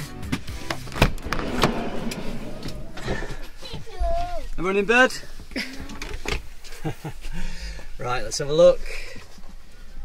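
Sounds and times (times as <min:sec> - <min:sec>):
sliding door rattling: 0:00.9 - 0:03.6.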